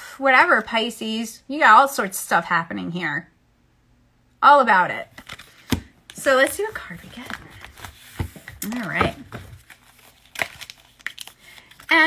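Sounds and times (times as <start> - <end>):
cards clicking and rustling: 5.1 - 12.0.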